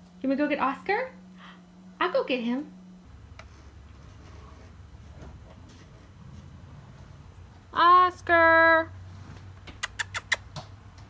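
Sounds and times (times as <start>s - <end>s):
squeaky lip-kissing sounds: 9.8s - 10.6s.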